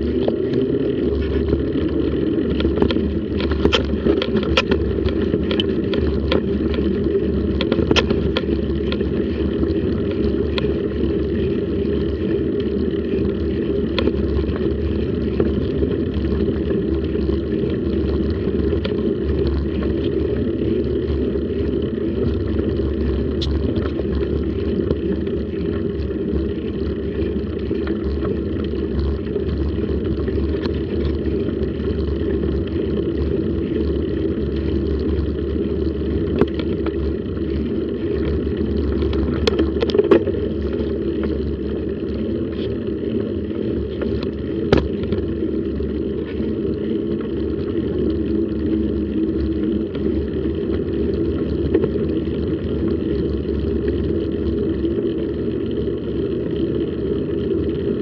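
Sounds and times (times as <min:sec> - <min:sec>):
wind and road vibration rumble: 0:00.0 - 0:58.0.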